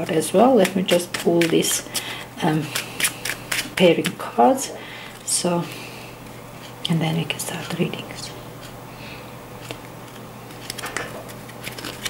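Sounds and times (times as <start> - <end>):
cards clicking and rustling: 0.6 - 4.2, 9.6 - 12.0.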